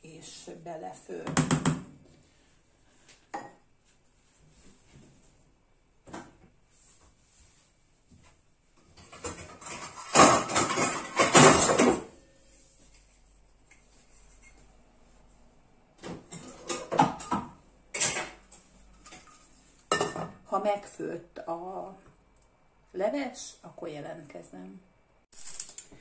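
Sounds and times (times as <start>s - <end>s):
cookware scraping clatter: 9.0s - 12.3s, 16.3s - 20.3s.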